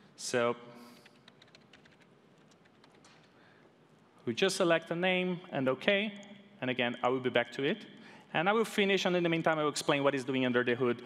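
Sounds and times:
faint keyboard typing: 0.8 - 4.0.

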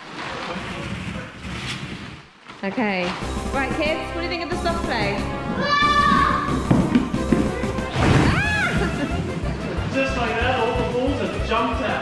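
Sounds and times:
background music: 3.2 - 12.0
child squealing: 5.6 - 6.5, 8.2 - 8.8.

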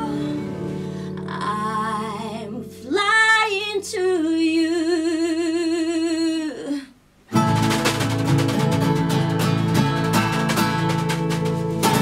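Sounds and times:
woman singing unaccompanied: 0.0 - 6.9.

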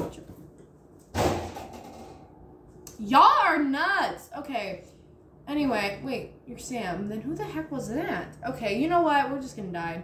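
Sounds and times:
sudden thump: 1.1 - 2.2.

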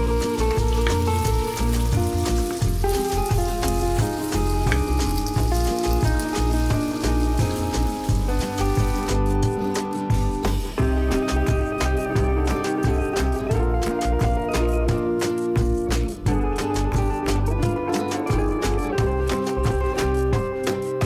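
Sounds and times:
potatoes sizzling in oil: 0.0 - 14.2
background music: 0.0 - 21.0.

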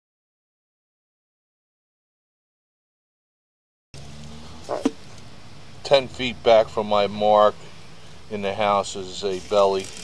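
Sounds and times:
steady low hum: 4.0 - 9.7.

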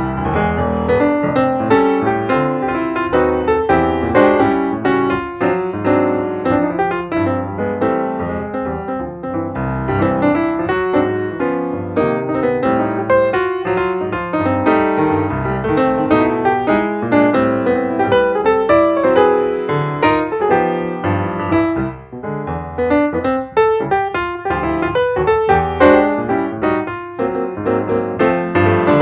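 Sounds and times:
piano music: 0.0 - 29.0.

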